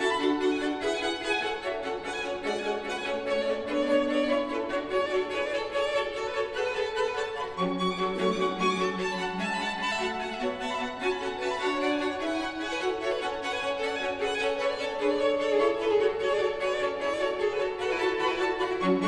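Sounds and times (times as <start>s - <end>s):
string quartet playing: 0.0s - 19.0s.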